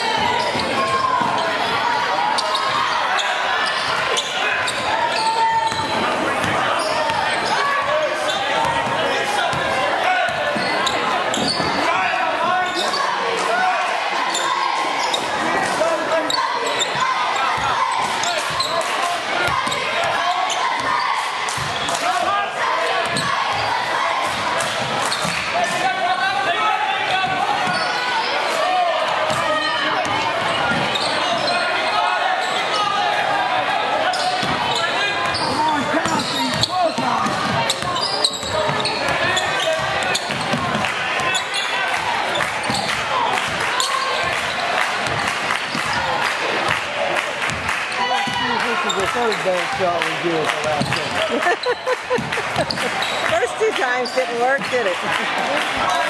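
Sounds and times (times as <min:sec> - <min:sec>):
crowd chatter echoing: 0:00.0 - 0:56.0.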